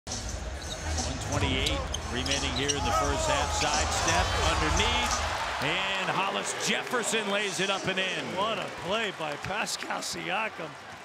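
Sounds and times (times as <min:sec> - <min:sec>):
arena crowd noise: 0:00.3 - 0:11.0.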